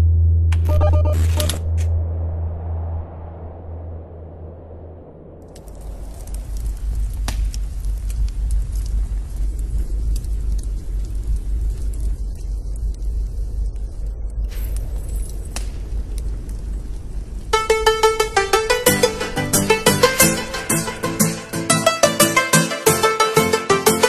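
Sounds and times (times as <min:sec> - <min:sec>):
low rumble: 0:00.0 - 0:22.1
rhythmic music: 0:17.6 - 0:24.0.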